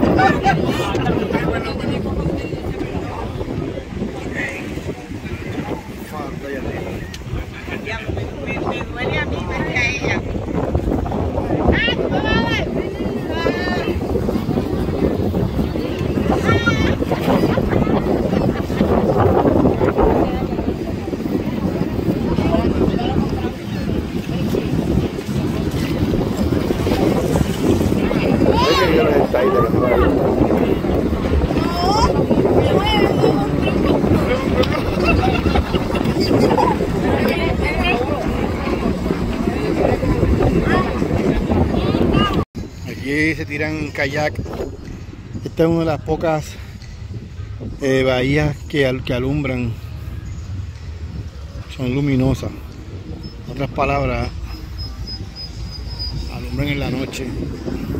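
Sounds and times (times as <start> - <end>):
people talking: 0.0 - 44.7
people's voices: 0.0 - 57.9
wind buffeting microphone: 0.0 - 57.9.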